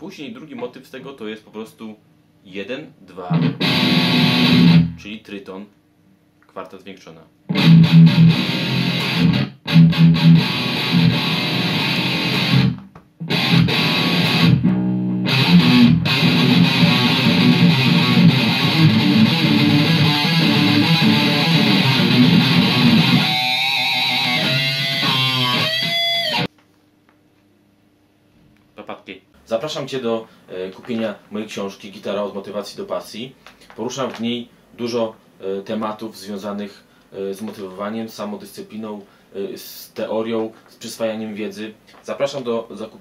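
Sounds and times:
distorted electric guitar riff: 0:03.3 - 0:05.1, 0:07.5 - 0:26.5.

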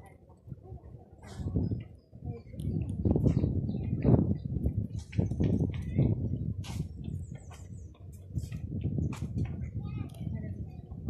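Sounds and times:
low rumbling on microphone: 0:00.0 - 0:11.0
small birds chirping: 0:01.7 - 0:11.0.

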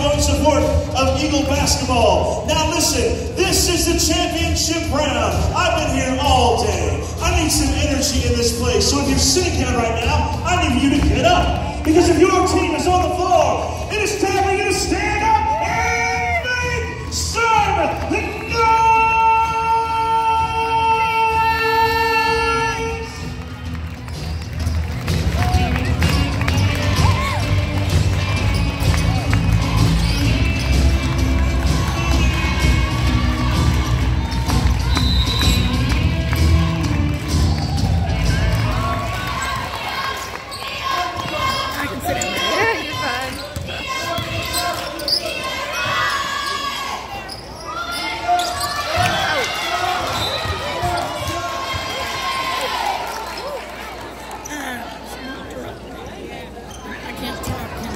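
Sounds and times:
bass-heavy music: 0:22.0 - 0:39.4
sneaker squeaks: 0:28.2 - 0:29.2, 0:29.8 - 0:30.9, 0:34.5 - 0:35.9, 0:40.4 - 0:49.3, 0:49.9 - 0:51.4, 0:56.6 - 0:57.9
basketball bouncing: 0:41.1 - 0:45.0.

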